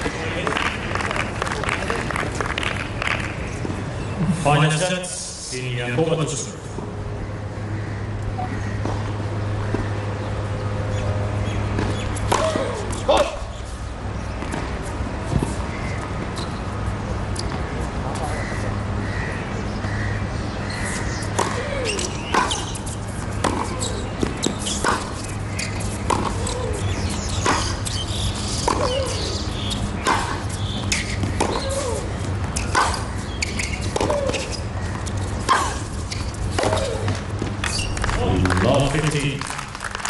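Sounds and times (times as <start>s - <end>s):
tennis ball bouncing: 11.7s - 13.4s, 21.2s - 38.8s
tennis racket hitting ball: 11.8s - 13.3s, 21.4s - 27.8s, 28.5s - 29.2s, 30.0s - 33.1s, 33.9s - 34.5s, 35.1s - 37.6s.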